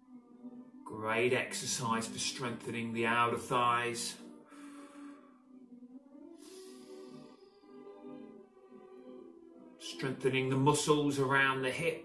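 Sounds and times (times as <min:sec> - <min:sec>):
soft background music: 0:00.0 - 0:12.0
person breathing: 0:04.4 - 0:05.6, 0:06.3 - 0:08.0.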